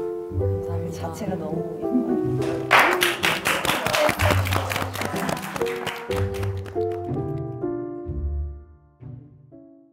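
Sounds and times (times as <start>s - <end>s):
background music: 0.0s - 9.9s
people clapping: 2.4s - 7.6s.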